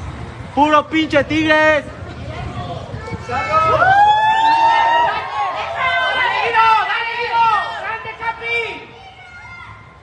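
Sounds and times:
crowd shouting and cheering: 0:02.5 - 0:10.0
long rising yell: 0:03.4 - 0:08.1.

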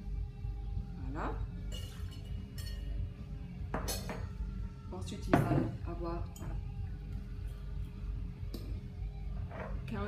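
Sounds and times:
metal barware clinking: 0:01.7 - 0:03.0, 0:03.7 - 0:04.3.

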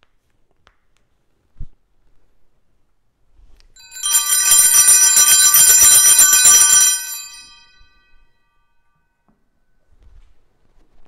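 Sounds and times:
small bells shaken rapidly: 0:03.8 - 0:07.9.

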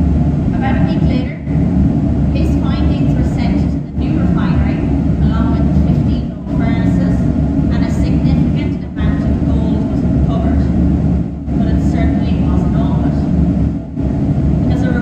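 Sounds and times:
low machine rumble: 0:00.0 - 0:15.0
woman talking into microphone: 0:00.6 - 0:01.6, 0:02.4 - 0:10.8, 0:11.5 - 0:13.3, 0:14.7 - 0:15.0.

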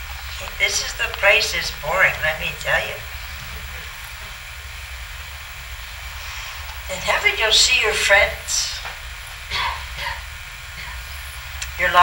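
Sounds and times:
low rumble: 0:00.0 - 0:07.0
faint hiss: 0:00.0 - 0:12.0.

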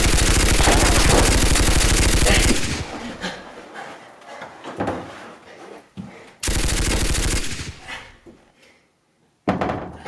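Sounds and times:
machine gun burst: 0:00.0 - 0:02.9, 0:06.4 - 0:07.8.

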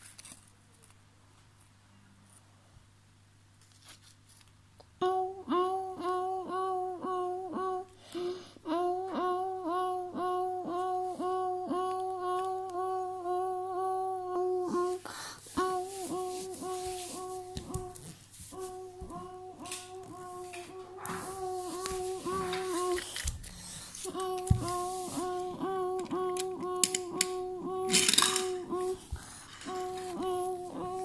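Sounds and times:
child humming: 0:05.0 - 0:23.3, 0:24.0 - 0:31.0.

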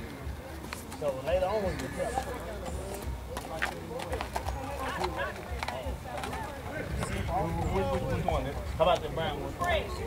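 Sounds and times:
horse hooves on dirt: 0:00.0 - 0:09.9
people talking: 0:00.0 - 0:10.0.

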